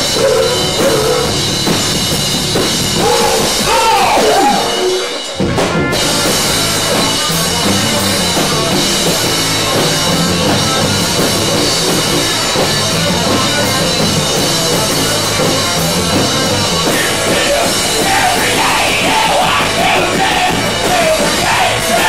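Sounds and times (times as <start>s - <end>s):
drum kit: 0.0s - 22.0s
live rock band playing: 0.0s - 22.0s
repeating bass line: 0.0s - 22.0s.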